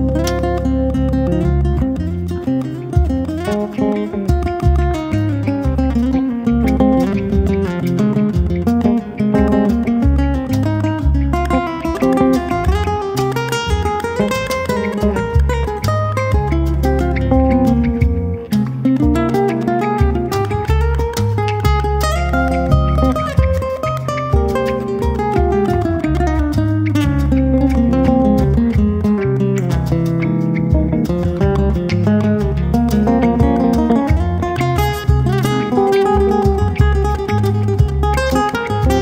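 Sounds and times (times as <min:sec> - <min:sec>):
bass line: 0:00.0 - 0:39.0
hand percussion: 0:00.0 - 0:39.0
latin jazz band playing: 0:00.0 - 0:39.0
plucked guitar melody: 0:00.0 - 0:39.0.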